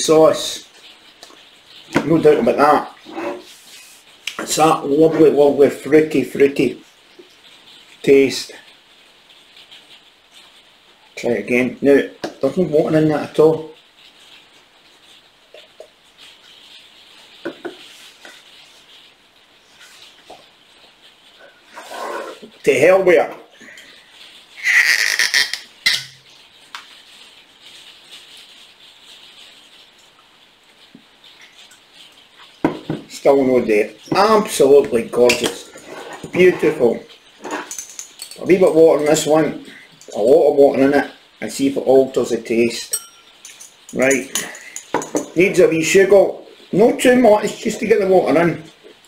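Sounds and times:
cork squeaking and popping: 24.6s - 26.2s
knock: 32.6s - 33.1s.

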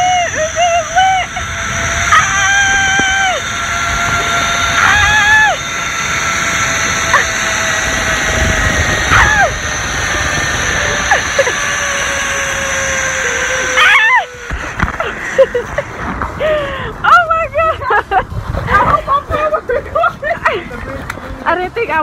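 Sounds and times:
person crying out: 0.0s - 3.5s, 4.3s - 5.8s, 7.0s - 7.6s, 9.0s - 9.9s, 10.9s - 12.6s, 13.4s - 14.4s
rush of wind: 0.0s - 22.0s
zip line trolley whine: 0.0s - 22.0s.

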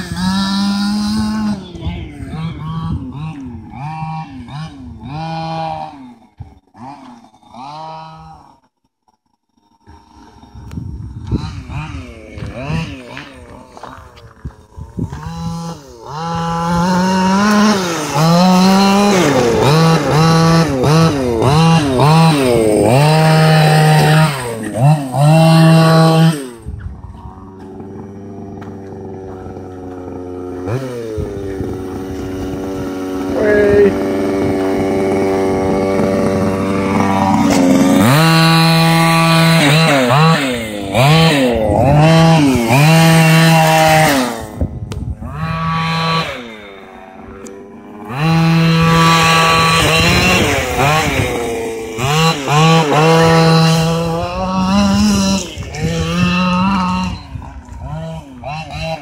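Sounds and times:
two-stroke engine revving: 0.0s - 59.0s.

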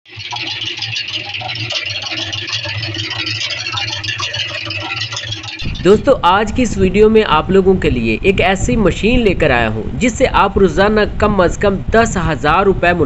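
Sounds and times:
water churning in turning drum: 0.0s - 7.8s
concrete mixer motor hum: 0.0s - 11.9s.

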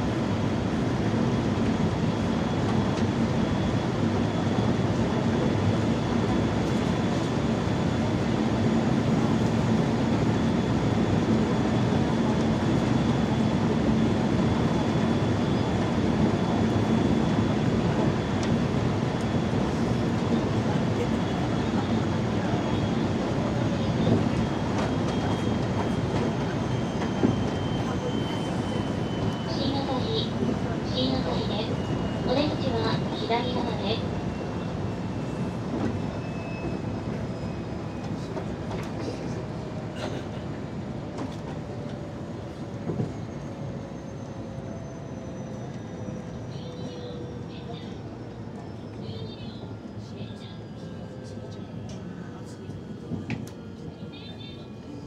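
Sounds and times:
train wheels rumbling on rail: 0.0s - 49.2s.

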